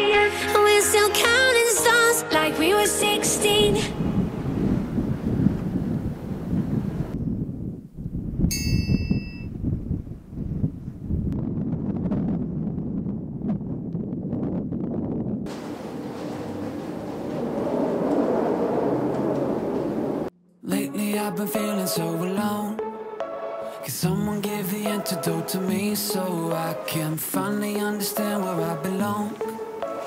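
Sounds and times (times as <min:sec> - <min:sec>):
background music: 0:00.0 - 0:04.5, 0:20.5 - 0:30.0
low rumbling noise: 0:02.6 - 0:08.5, 0:09.6 - 0:20.4
bright ding-like chime: 0:08.5 - 0:09.5.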